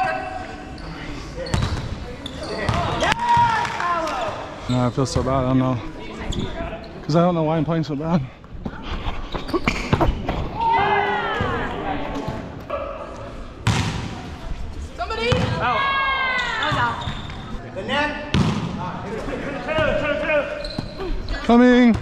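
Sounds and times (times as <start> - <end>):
sneakers squeaking on hardwood: 0.7 - 3.1, 6.2 - 7.0, 16.4 - 17.6, 19.8 - 22.0
volleyball struck by hands: 13.6 - 14.2, 18.3 - 18.8.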